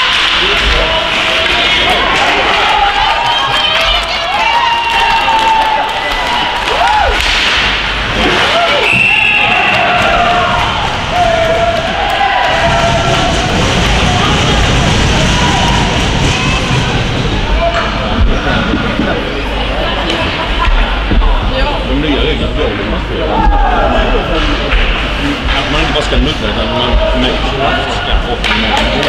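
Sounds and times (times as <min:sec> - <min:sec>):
people shouting and calling: 0:00.0 - 0:07.3, 0:08.2 - 0:18.4, 0:23.2 - 0:24.4.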